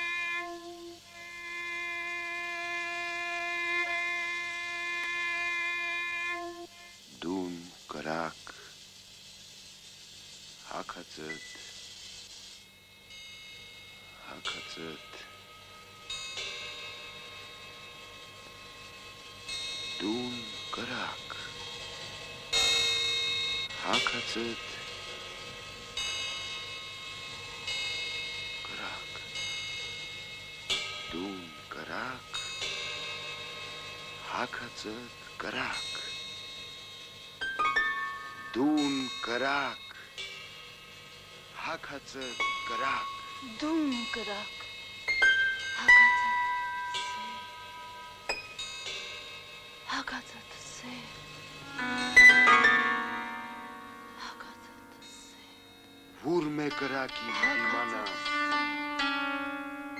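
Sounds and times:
bowed string long note: 0.0s - 7.4s, 13.9s - 59.9s
metallic bell chimes: 12.6s - 59.9s.

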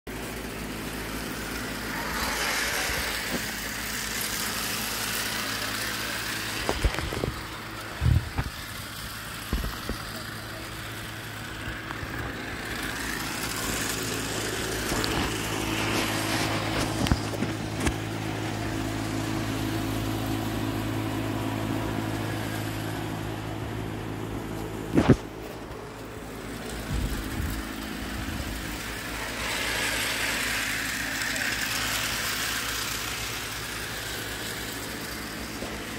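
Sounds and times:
toy train motor humming: 0.1s - 20.6s, 25.0s - 35.9s.

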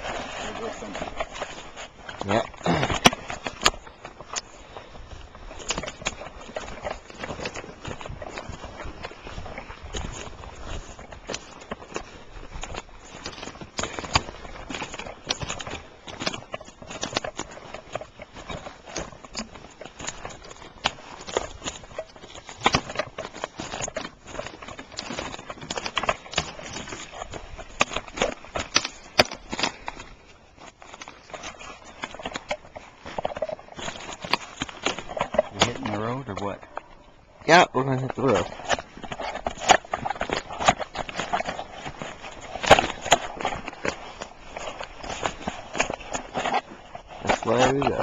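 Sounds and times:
footsteps crunching on twigs and snow: 0.0s - 48.0s.

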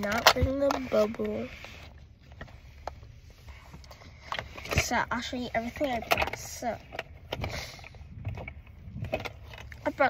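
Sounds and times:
makeup items clicking and rattling: 0.0s - 1.5s, 4.2s - 10.0s.

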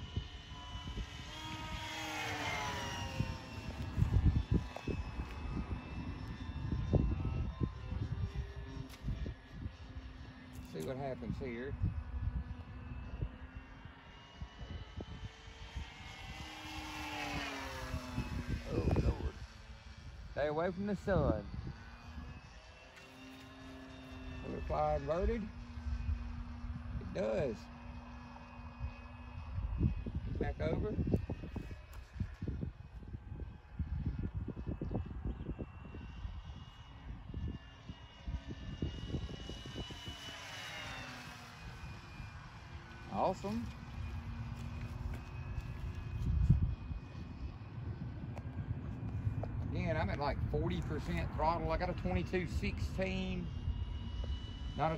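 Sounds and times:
rc airplane electric motor buzzing: 0.0s - 54.9s
wind buffeting microphone: 0.0s - 54.9s.

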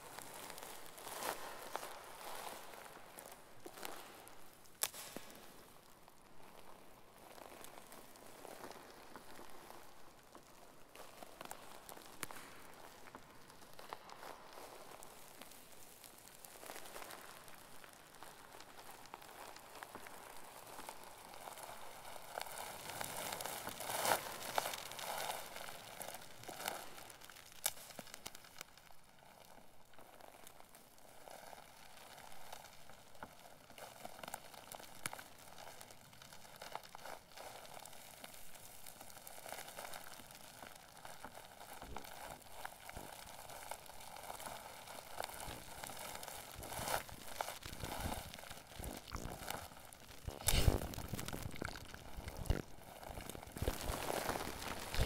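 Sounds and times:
crackling noise textures: 0.0s - 55.0s.

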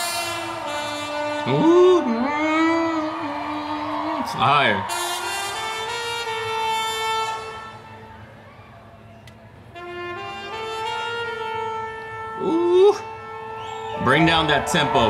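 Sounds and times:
trumpet holding long notes: 0.0s - 8.5s, 9.7s - 15.0s.

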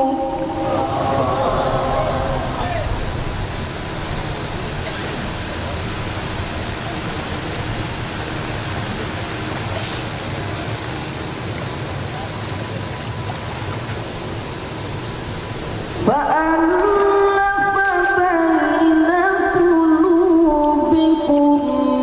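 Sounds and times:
person reciting verse: 0.0s - 2.9s.

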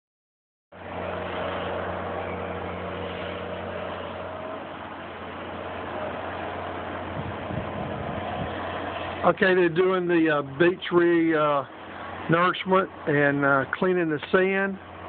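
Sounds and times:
even rushing noise: 0.8s - 14.9s
distant diesel engine hum: 0.8s - 15.0s.

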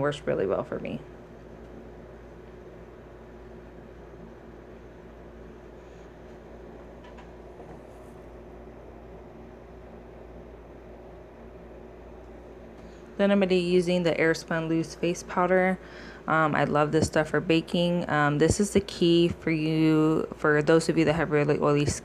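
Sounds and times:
room tone hum and hiss: 0.0s - 22.0s.

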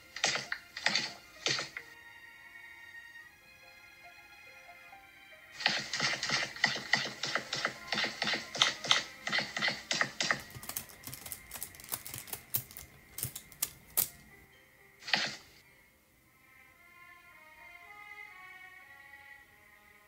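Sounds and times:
sharp clicks: 5.6s - 14.3s
keyboard typing clicks: 6.1s - 14.3s.

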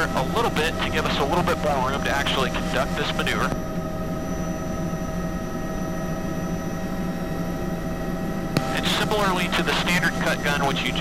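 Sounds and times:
helicopter turbine and rotor running: 0.0s - 11.0s.

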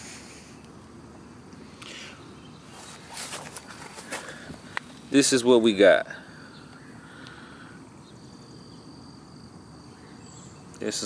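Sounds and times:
hands rustling through soil and roots: 2.6s - 5.2s.

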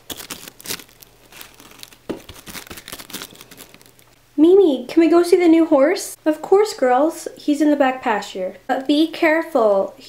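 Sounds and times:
crinkling and rustling: 0.0s - 4.2s.

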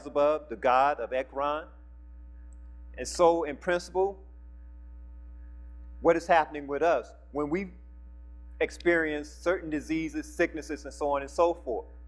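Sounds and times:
person speaking: 0.0s - 1.8s, 3.0s - 4.2s, 6.0s - 7.9s, 8.6s - 12.0s
electrical mains hum: 0.0s - 12.0s.

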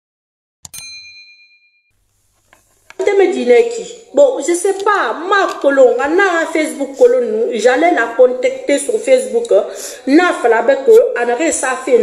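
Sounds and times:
notification bell ding: 0.7s - 1.9s.

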